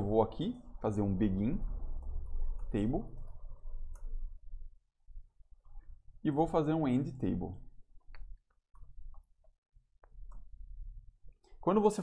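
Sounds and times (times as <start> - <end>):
low hum: 0.0 - 11.4.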